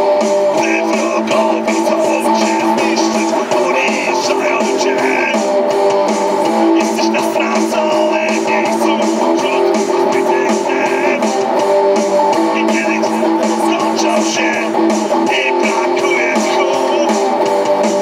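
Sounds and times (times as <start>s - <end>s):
amplified electric guitar strumming: 0.0s - 18.0s.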